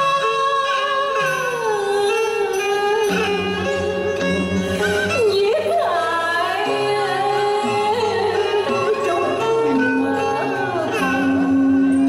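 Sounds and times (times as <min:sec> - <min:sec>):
woman singing: 0:00.0 - 0:03.7, 0:05.0 - 0:12.0
instrumental accompaniment: 0:00.0 - 0:12.0.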